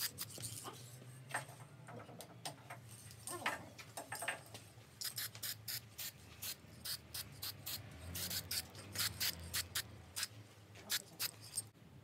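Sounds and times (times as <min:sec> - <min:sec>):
spray can hissing: 0:05.0 - 0:10.3.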